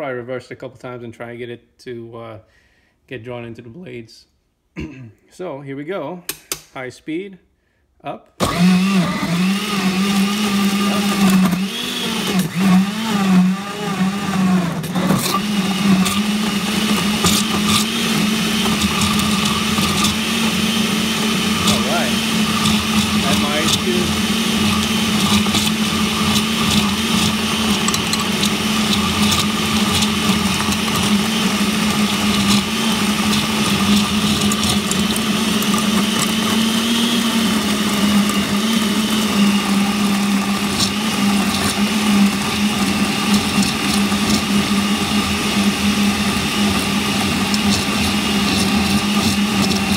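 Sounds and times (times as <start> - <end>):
blender running on high: 8.4 - 49.9.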